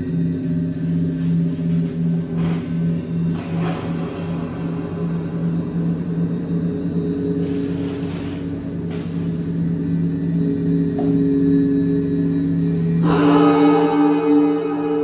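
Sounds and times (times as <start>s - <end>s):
pulsing low drone: 0.0s - 15.0s
steady higher tones: 0.0s - 15.0s.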